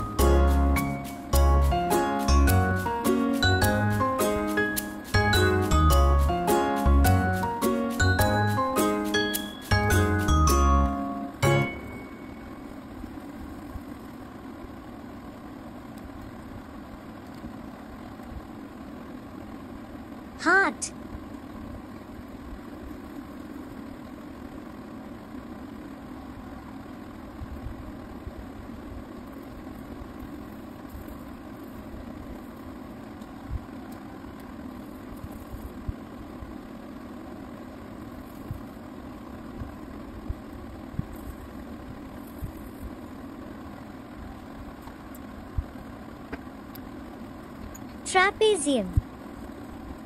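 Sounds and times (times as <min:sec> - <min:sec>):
low mechanical hum: 0:00.0 - 0:50.0.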